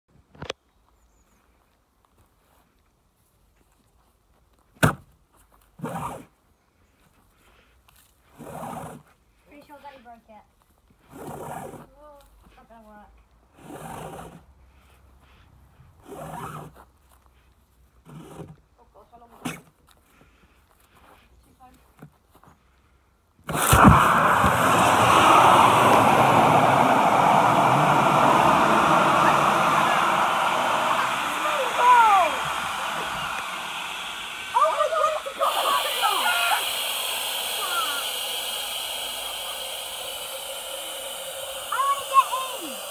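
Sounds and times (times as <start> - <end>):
liferaft inflating with hissing gas: 23.5 - 42.9.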